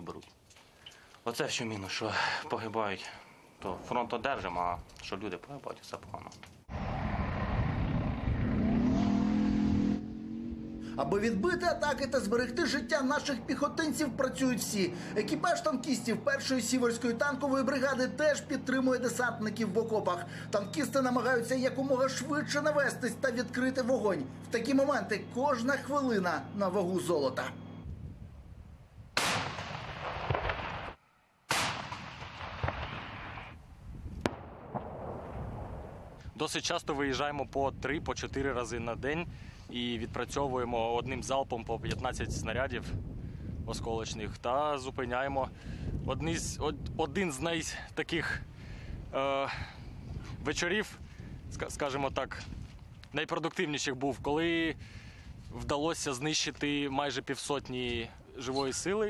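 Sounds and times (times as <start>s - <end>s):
low rumble: 6.7s - 15.2s
tank engine revving: 6.7s - 27.8s
sharp crack: 29.2s - 33.6s, 34.2s - 35.4s
tank gun blasts: 29.2s - 33.6s, 34.2s - 36.1s.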